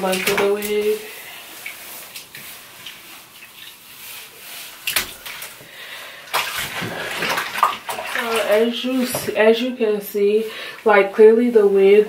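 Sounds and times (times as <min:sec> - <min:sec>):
water splash: 0:00.0 - 0:03.8, 0:04.8 - 0:05.6, 0:06.3 - 0:09.3
water streaming off hair: 0:00.0 - 0:09.6
water swishing in bathtub: 0:00.0 - 0:12.0.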